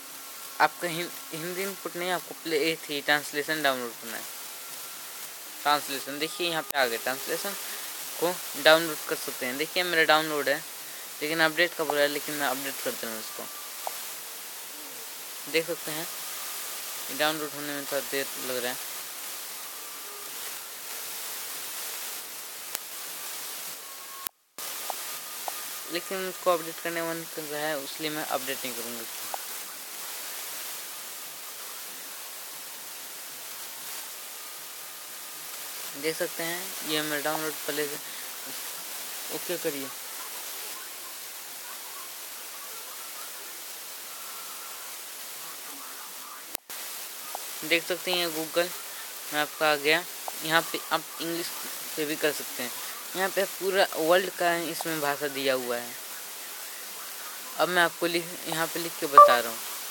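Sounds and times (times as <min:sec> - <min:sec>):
faint indistinct sounds: 0:00.0 - 0:55.1
background hiss: 0:00.0 - 0:59.9
faint thin tones: 0:59.1 - 0:59.6.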